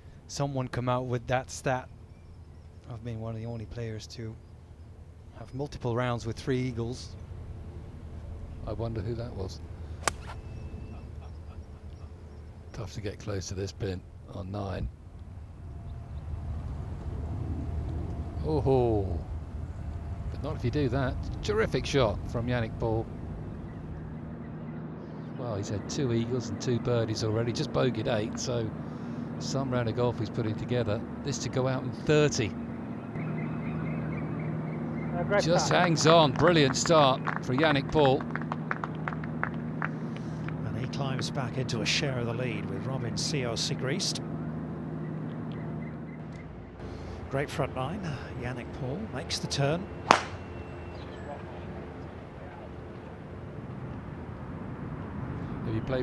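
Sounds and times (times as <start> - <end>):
low steady rumble: 0.0 - 56.0
low hum: 1.8 - 35.4, 38.2 - 56.0
spectators clapping: 35.6 - 40.6.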